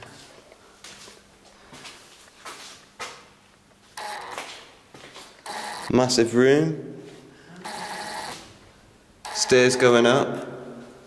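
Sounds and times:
footsteps on concrete: 0.0s - 3.3s, 4.3s - 5.4s.

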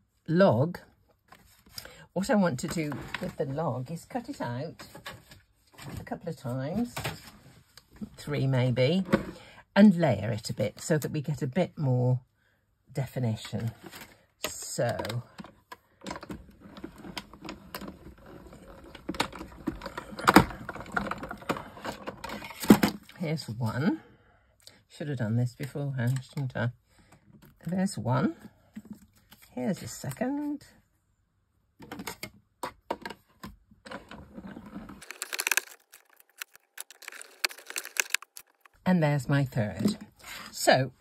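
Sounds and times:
paper rustling and crinkling: 35.0s - 38.8s.

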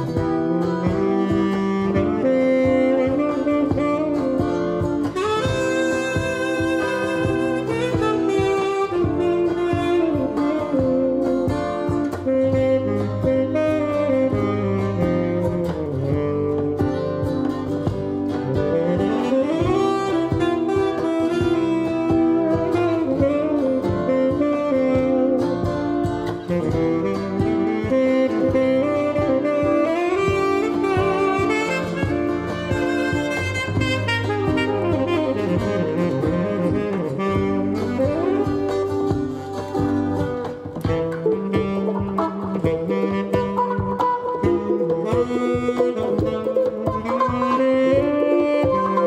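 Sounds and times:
guitar accompaniment: 0.0s - 49.0s
tenor saxophone jazz melody: 0.0s - 49.0s.

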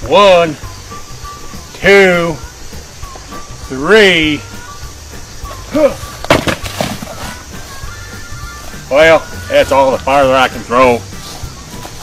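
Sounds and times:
shoes knocking on branches: 5.4s - 7.8s, 11.1s - 12.0s.

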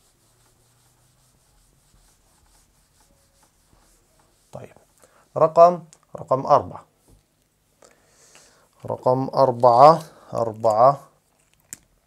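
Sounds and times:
eraser rubbing whiteboard: 0.0s - 5.6s.

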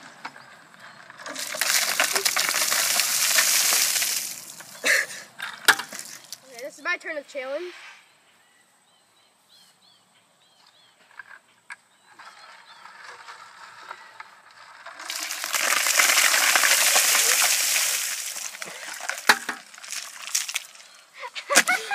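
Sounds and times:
water splashing from bucket: 1.2s - 4.8s, 15.0s - 21.9s.

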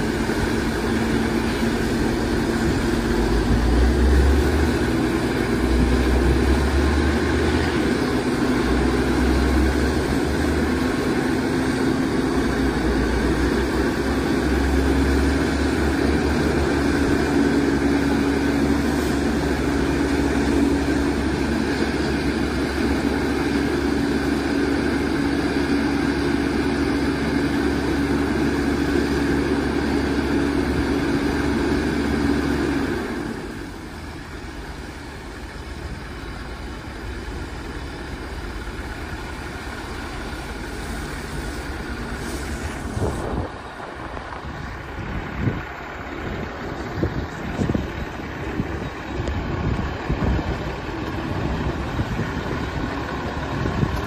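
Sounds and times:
diesel engine running at high revs: 0.0s - 54.0s.

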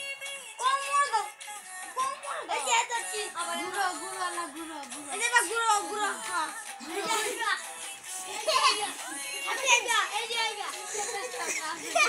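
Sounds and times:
children chattering and calling out: 0.6s - 12.0s.

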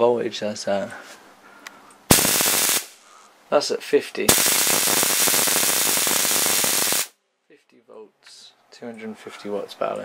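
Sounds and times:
man speaking: 0.0s - 1.0s, 3.5s - 4.4s, 7.5s - 10.0s
electric arc crackling and humming: 2.1s - 3.0s, 4.3s - 7.2s.

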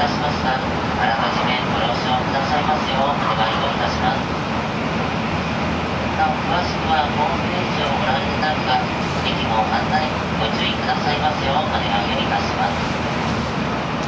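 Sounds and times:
train running noise: 0.0s - 14.0s.

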